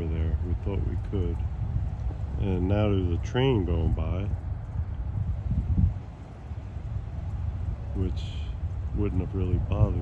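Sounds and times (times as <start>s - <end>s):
distant freight train rumbling: 0.0s - 10.0s.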